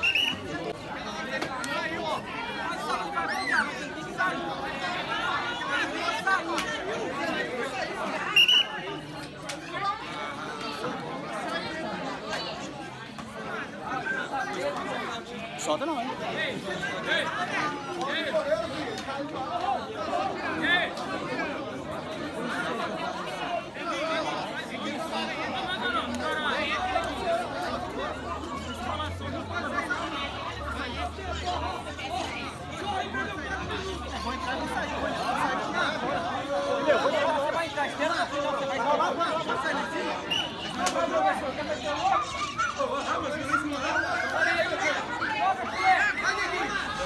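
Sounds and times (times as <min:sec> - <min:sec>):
overlapping chatter: 0:00.0 - 0:47.0
voices calling out: 0:00.0 - 0:47.0.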